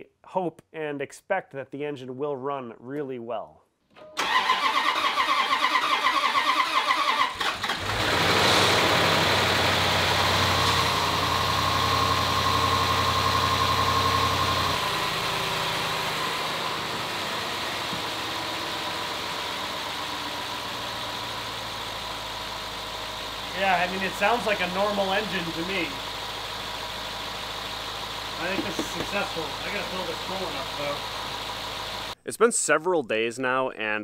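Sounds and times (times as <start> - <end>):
car engine cranking: 4.2 - 32.2
car engine idling: 7.0 - 32.2.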